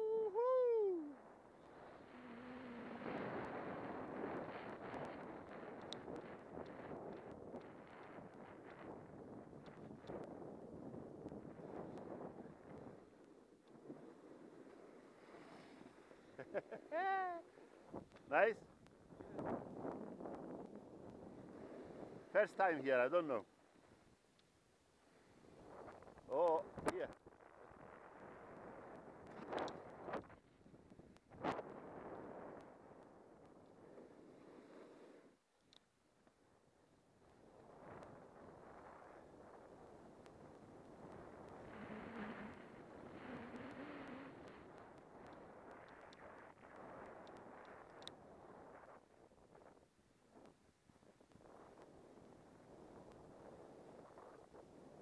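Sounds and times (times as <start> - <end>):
snowboard scraping over snow: 1.7 - 18.0, 31.3 - 35.3, 37.6 - 45.7
small clicks: 29.2 - 31.3, 35.6 - 35.9, 44.4 - 48.2.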